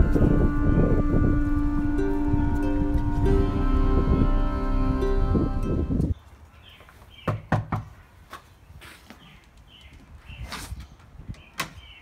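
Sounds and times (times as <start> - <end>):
birds chirping: 6.0 - 12.0.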